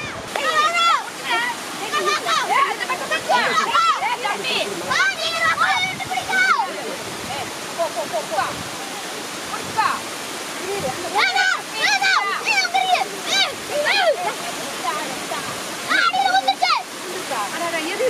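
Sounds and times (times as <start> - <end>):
water rushing over weir: 0.0 - 18.0.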